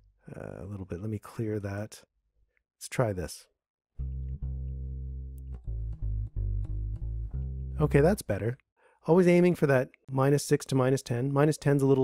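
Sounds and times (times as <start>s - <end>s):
electric bass guitar notes: 4.0s - 8.3s.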